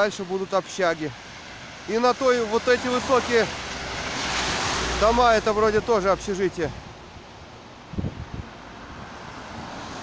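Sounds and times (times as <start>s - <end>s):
wet-road traffic noise: 0.0s - 10.0s
car tyres hissing on wet road: 2.5s - 5.2s, 8.9s - 10.0s
wind buffeting microphone: 7.8s - 9.3s.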